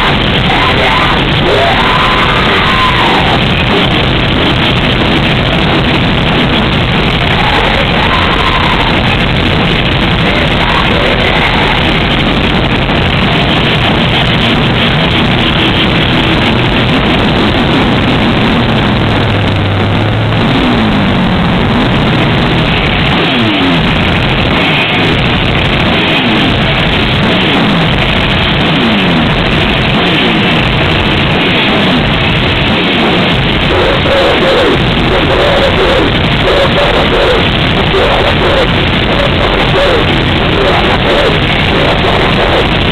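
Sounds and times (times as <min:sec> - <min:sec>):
distorted guitars: 0:00.0 - 0:42.9
drums: 0:00.0 - 0:42.9.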